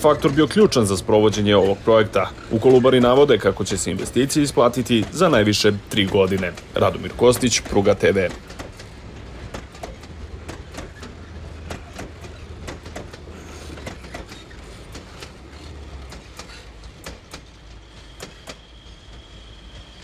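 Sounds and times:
low train rumble: 0.0 - 20.0
train wheels clicking on rail joints: 0.0 - 20.0.

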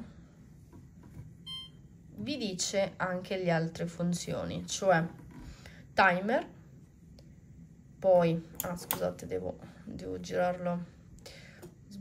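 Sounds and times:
short electronic beep: 1.5 - 1.8.

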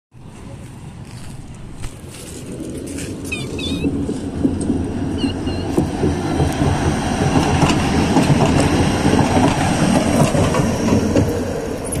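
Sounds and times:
tram passing on rails: 0.2 - 12.0.

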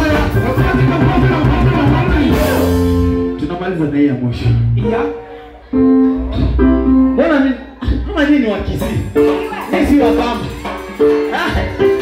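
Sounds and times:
drum kit played hard: 0.0 - 3.4, 8.6 - 12.0
live band music: 0.0 - 12.0.

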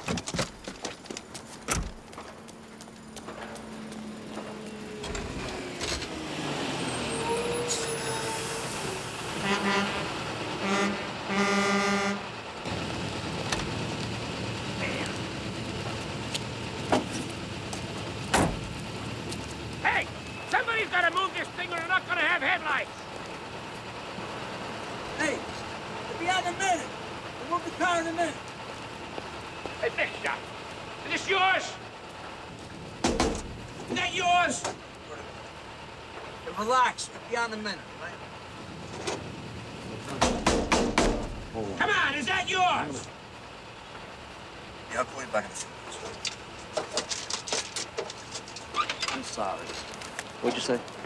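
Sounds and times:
city street traffic: 0.0 - 51.0
car horn honking: 9.4 - 12.3
voices: 14.6 - 16.8, 19.3 - 23.5, 24.2 - 32.4, 33.7 - 38.5, 41.4 - 51.0.

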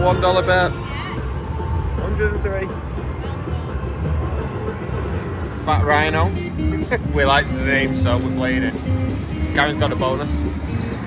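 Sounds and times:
electronic slot machine music: 0.0 - 11.0
low din of casino floor: 0.0 - 11.0.

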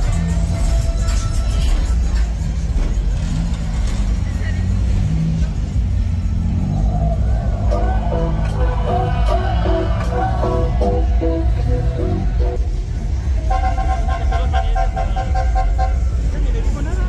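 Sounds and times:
car engines rumbling: 0.0 - 17.0
crowd voices: 0.0 - 17.0
loud music from car stereos: 7.6 - 12.6.

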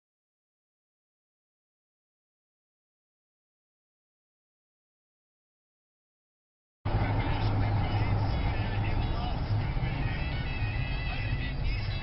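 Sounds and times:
car interior rumble: 6.9 - 12.0
music: 6.9 - 12.0
voices: 6.9 - 12.0.

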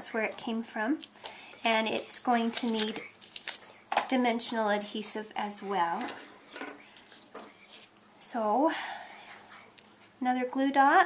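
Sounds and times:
paper rustling: 1.0 - 4.0, 6.0 - 8.0.

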